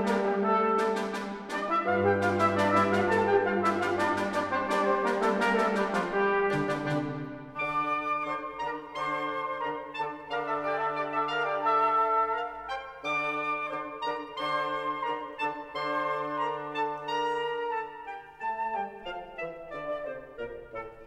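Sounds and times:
orchestra with brass chords: 0:00.0 - 0:21.0.

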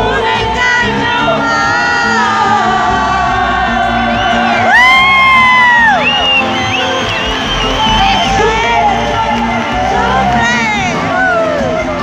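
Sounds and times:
woman singing through pa: 0:00.0 - 0:04.1, 0:08.6 - 0:12.0
live band music: 0:00.0 - 0:12.0.

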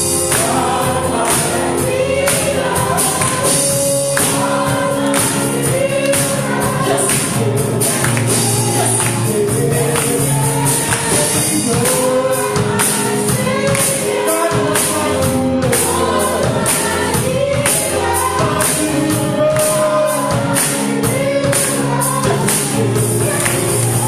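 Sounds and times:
percussion beat: 0:00.0 - 0:24.0
women singing gospel song: 0:00.0 - 0:24.0.

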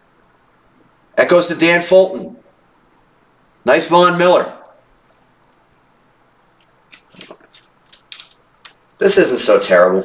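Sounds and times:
cards snapping onto a stack: 0:06.8 - 0:08.9.

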